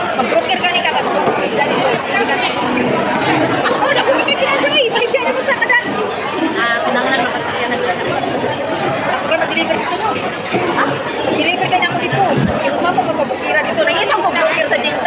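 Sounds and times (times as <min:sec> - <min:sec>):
indistinct chatter of many voices: 0:00.0 - 0:15.0.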